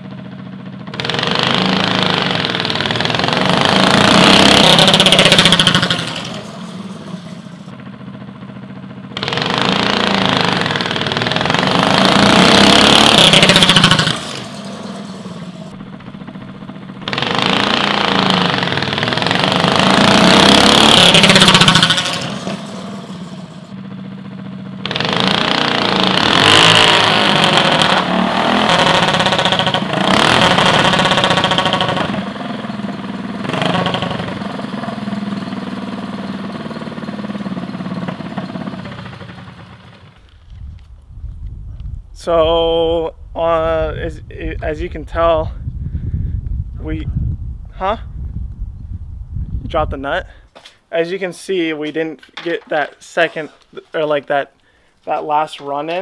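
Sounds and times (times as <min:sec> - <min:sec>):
go-kart engine revving: 0:00.0 - 0:07.8, 0:08.9 - 0:40.4.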